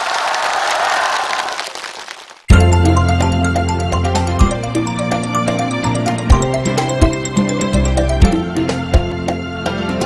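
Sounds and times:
audience applauding: 0.0 - 2.5.

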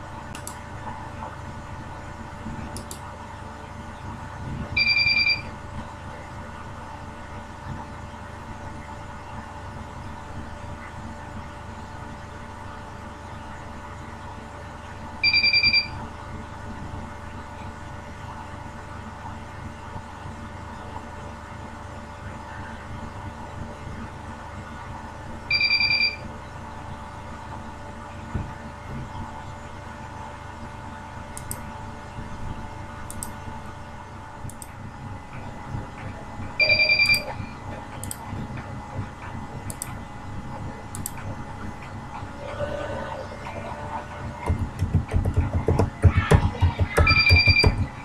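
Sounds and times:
steady background hum: 0.0 - 48.0
short high beep: 36.6 - 37.3
pulsing electronic beep: 36.6 - 37.4, 47.0 - 47.9.

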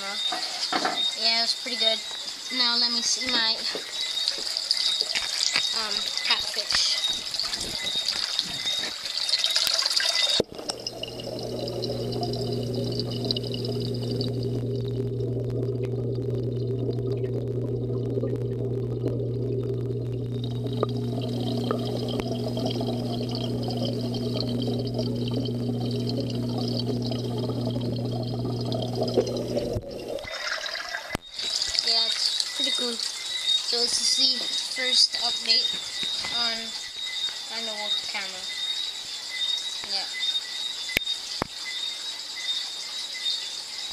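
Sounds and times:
rustling and splashing: 3.4 - 33.2
muffled underwater hum: 10.4 - 30.4.

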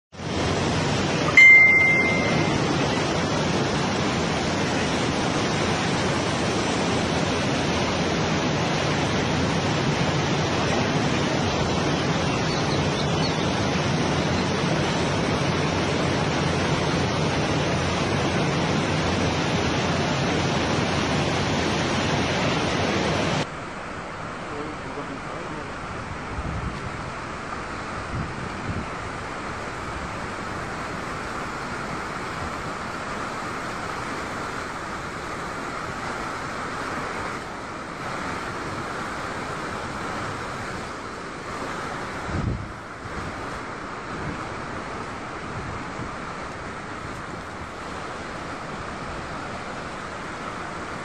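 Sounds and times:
mountain torrent rushing: 0.2 - 51.0
short high beep: 1.3 - 2.7.

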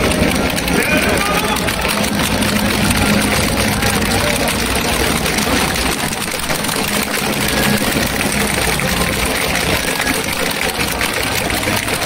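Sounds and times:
music over public address system: 0.0 - 12.0.

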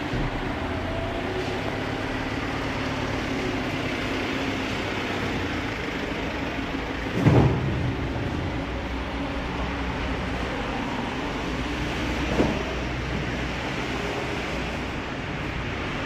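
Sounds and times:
steady mechanical rumble: 0.0 - 16.0
loud low thump: 7.1 - 8.6.

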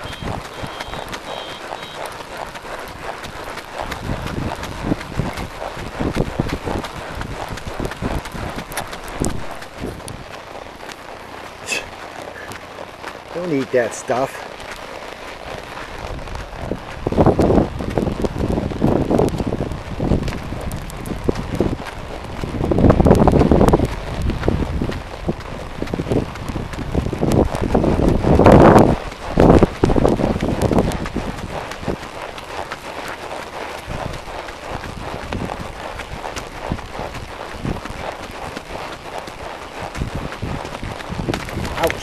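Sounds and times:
hooves clicking: 0.0 - 42.0
horse walking on dirt: 0.0 - 42.0
wind buffeting microphone: 0.0 - 42.0.

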